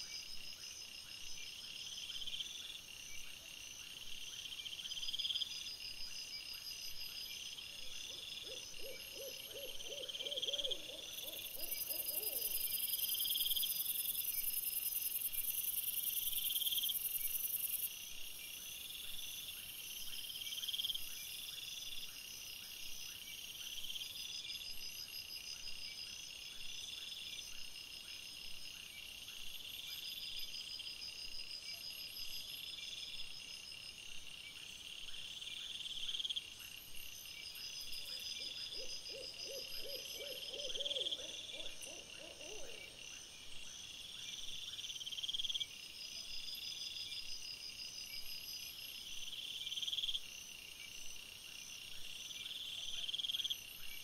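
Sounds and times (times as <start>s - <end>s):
crickets chirping: 0.0s - 54.0s.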